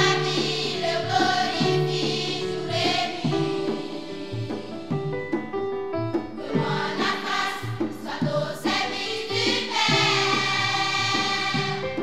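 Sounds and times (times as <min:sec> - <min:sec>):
children's choir singing: 0:00.0 - 0:05.0, 0:06.4 - 0:12.0.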